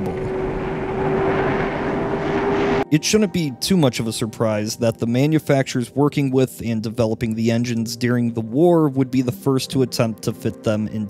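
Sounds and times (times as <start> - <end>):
gas turbine engine whine: 0.0 - 2.9.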